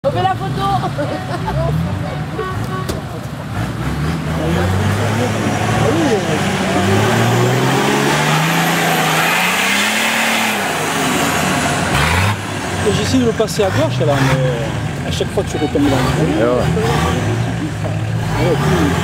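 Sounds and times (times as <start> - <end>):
off-road vehicle engine revving: 0.0 - 19.0.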